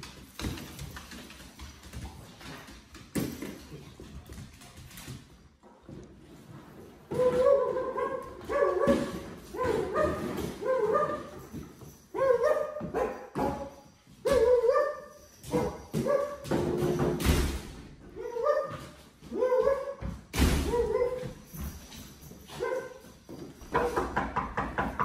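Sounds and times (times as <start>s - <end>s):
dog barking and whining: 7.1s - 16.4s, 18.1s - 20.0s, 20.6s - 21.4s.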